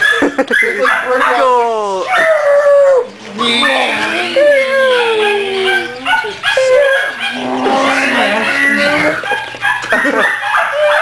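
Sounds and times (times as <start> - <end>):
puppies whining: 0.0 - 11.0
puppies yipping: 0.0 - 11.0.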